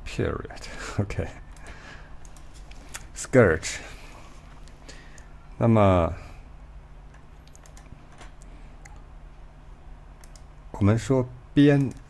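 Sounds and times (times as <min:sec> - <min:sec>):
low electrical hum: 0:00.0 - 0:12.0
computer keyboard keystrokes: 0:07.1 - 0:09.0, 0:10.2 - 0:10.5, 0:11.7 - 0:12.0.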